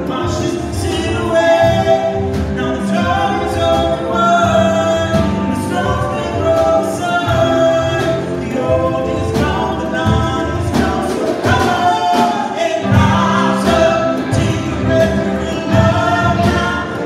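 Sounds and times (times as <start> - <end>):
acoustic guitar: 0.0 - 17.0
drum kit beat: 0.0 - 17.0
voices singing together: 0.0 - 17.0
electric bass: 12.8 - 17.0.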